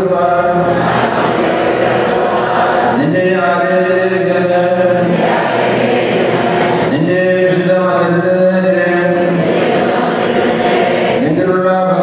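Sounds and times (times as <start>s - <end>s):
man chanting into a microphone: 0.0s - 0.8s, 2.9s - 5.2s, 6.8s - 9.6s, 11.1s - 12.0s.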